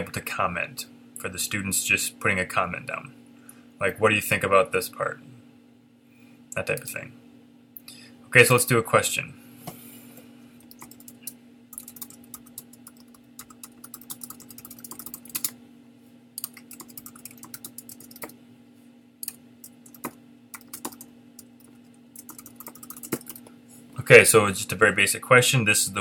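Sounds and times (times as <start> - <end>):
faint steady hum: 0.0 - 26.0
typing on computer keyboard: 10.6 - 11.2, 11.8 - 15.5, 16.4 - 18.3, 19.2 - 23.4.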